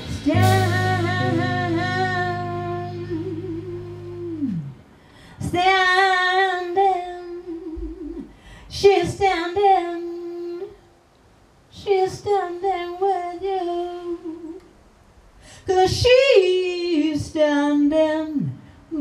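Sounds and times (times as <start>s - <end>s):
woman singing into microphone: 0.0s - 10.8s, 11.7s - 14.6s, 15.6s - 19.0s.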